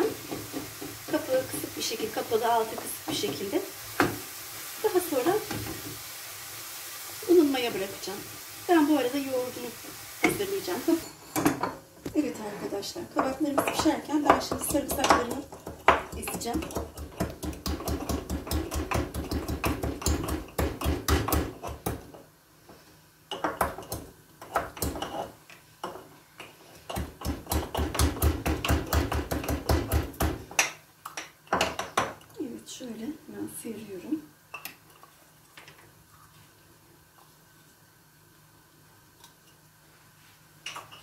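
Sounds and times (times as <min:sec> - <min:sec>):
pestle knocking in wooden mortar: 0:13.2 - 0:22.1, 0:26.9 - 0:30.7.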